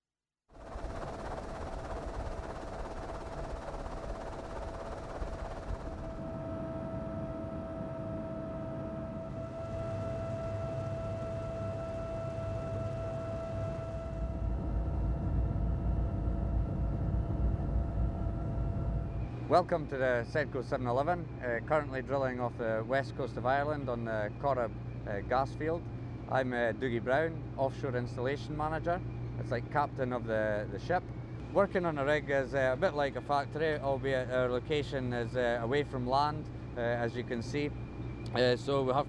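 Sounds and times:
helicopter engine whine: 0:00.5 - 0:39.0
low rotor rumble: 0:00.5 - 0:39.0.

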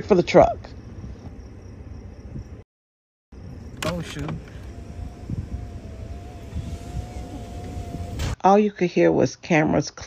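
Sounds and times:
truck engine rumbling: 0:03.3 - 0:08.4.

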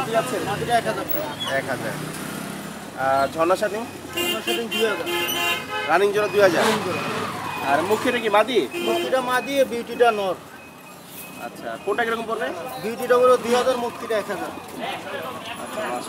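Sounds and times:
market voices talking: 0:00.0 - 0:16.0
horn sounding: 0:04.1 - 0:09.3.

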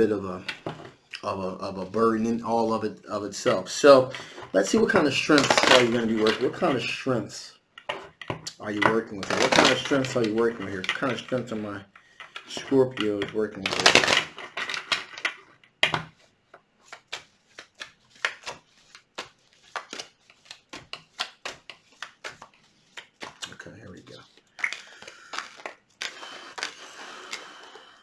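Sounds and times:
cards shuffling: 0:03.4 - 0:07.0, 0:07.8 - 0:27.7
cards clicking and snapping: 0:05.2 - 0:06.7, 0:07.8 - 0:16.1, 0:16.9 - 0:23.6, 0:24.2 - 0:27.6.

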